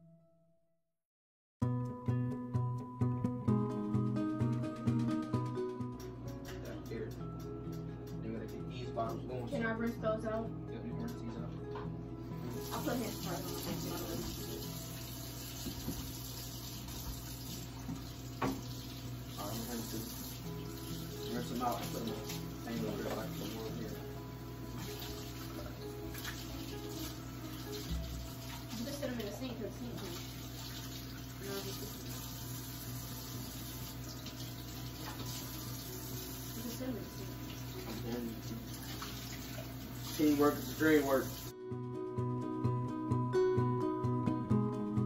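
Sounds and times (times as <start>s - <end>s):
faucet water running: 12.3s - 41.6s.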